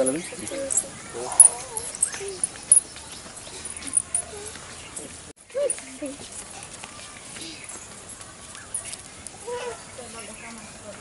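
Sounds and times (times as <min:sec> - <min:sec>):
faint voices: 0:00.0 - 0:11.0
outdoor background noise: 0:00.0 - 0:11.0.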